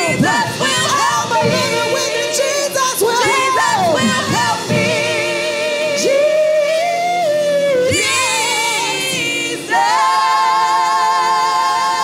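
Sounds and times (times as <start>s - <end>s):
gospel singers holding notes: 0.0s - 12.0s.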